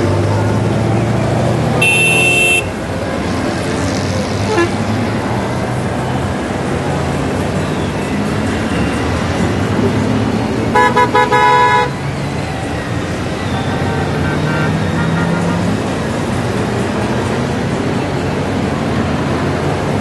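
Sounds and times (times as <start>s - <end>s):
motorcycles engine rumble: 0.0s - 20.0s
motorcycle horn toots: 1.8s - 2.7s, 10.8s - 11.9s.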